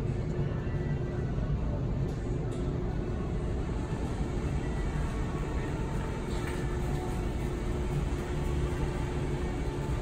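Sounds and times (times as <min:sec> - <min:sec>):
supermarket background hum: 0:00.0 - 0:10.0.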